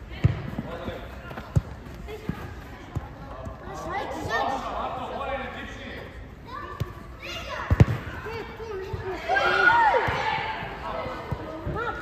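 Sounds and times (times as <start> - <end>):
football kick thuds: 7.7 - 8.1
people shouting: 9.2 - 10.7.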